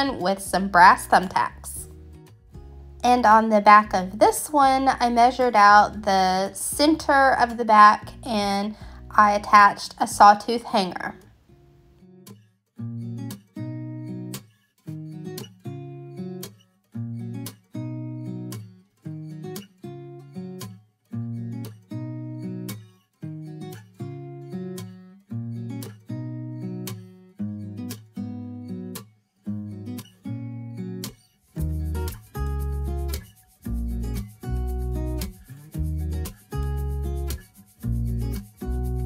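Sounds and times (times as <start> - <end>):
acoustic guitar strumming: 0.0 - 39.0.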